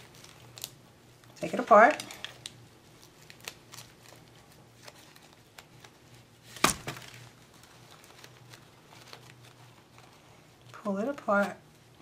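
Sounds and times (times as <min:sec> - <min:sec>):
fabric petals rustling: 0:00.0 - 0:12.0.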